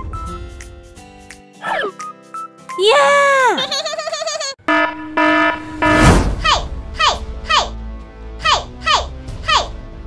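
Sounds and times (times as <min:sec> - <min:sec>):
music: 0:00.0 - 0:04.3, 0:06.3 - 0:10.0.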